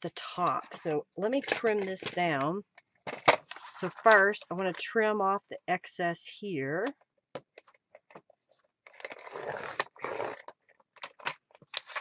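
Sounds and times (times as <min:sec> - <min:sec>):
paper rustling and scraping: 0:03.2 - 0:04.3, 0:08.4 - 0:10.5, 0:11.6 - 0:12.0.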